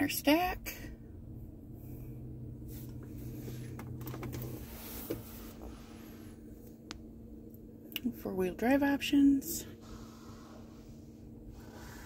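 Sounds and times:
low hum inside car cabin: 0:00.0 - 0:12.0.

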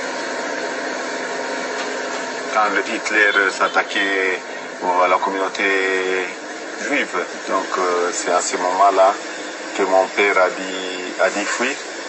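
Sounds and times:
boat engine drone: 0:00.0 - 0:12.0.

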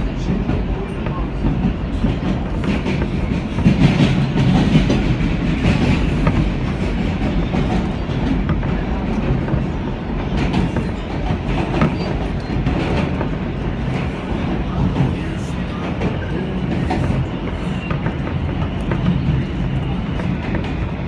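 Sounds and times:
subway wheels rumbling on rail: 0:00.0 - 0:21.0.

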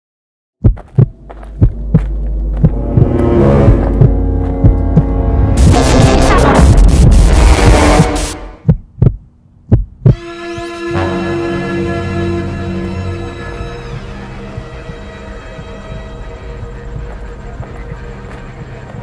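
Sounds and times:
heartbeat-like thumps: 0:00.6 - 0:10.7, 0:13.5 - 0:19.0
low drone: 0:01.2 - 0:08.6, 0:10.2 - 0:19.0
loud noisy surge: 0:01.9 - 0:08.6, 0:10.2 - 0:17.5.

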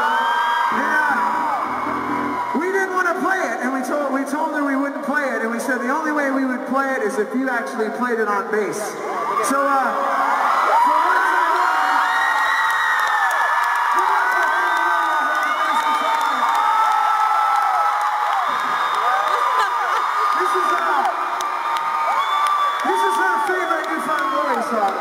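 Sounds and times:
crowd cheering and screaming: 0:00.0 - 0:03.4, 0:09.0 - 0:25.0.

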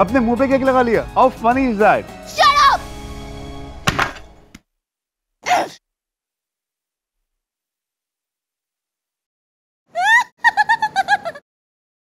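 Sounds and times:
background music on held chord: 0:00.0 - 0:04.5
sharp thunk: 0:03.8 - 0:04.3.

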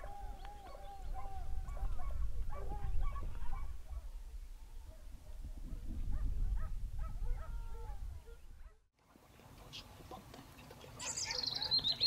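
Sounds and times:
distant hounds barking: 0:00.0 - 0:08.8, 0:11.0 - 0:12.0
bird whistled call: 0:11.0 - 0:12.0.

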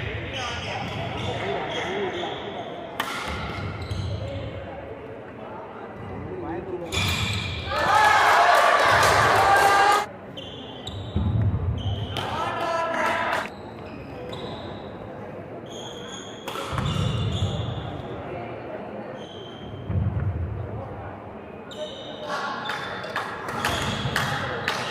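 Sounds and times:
shoes squeaking on floor: 0:00.4 - 0:02.8, 0:03.4 - 0:04.6, 0:06.8 - 0:07.6, 0:10.3 - 0:12.2, 0:13.5 - 0:15.0, 0:15.6 - 0:18.0, 0:19.1 - 0:19.9, 0:21.7 - 0:23.0
racket hitting shuttlecock: 0:03.0 - 0:03.7.

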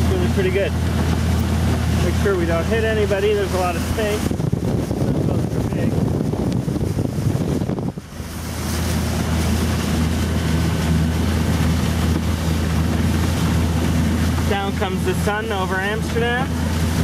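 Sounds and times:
low drivetrain hum: 0:00.0 - 0:17.0
water rushing along hull: 0:00.0 - 0:17.0
wind buffeting microphone: 0:00.0 - 0:17.0.

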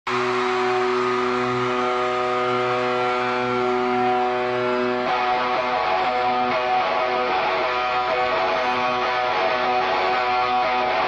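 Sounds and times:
steady droning note: 0:00.1 - 0:11.0.

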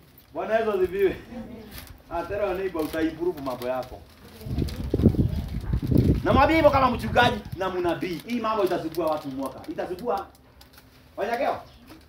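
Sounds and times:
low rumbling noise: 0:04.0 - 0:07.7.

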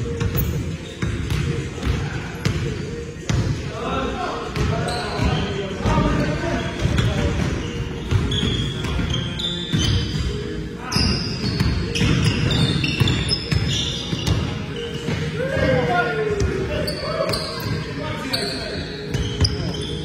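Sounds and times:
sneakers squeaking on gym floor: 0:00.0 - 0:03.7, 0:04.4 - 0:20.0.

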